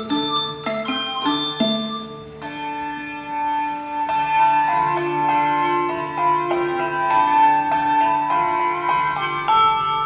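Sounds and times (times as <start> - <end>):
handbells ringing chords: 0.0 - 10.0.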